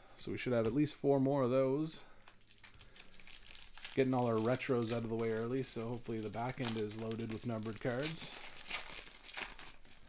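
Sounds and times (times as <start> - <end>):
foil wrapper crinkling: 2.2 - 10.0.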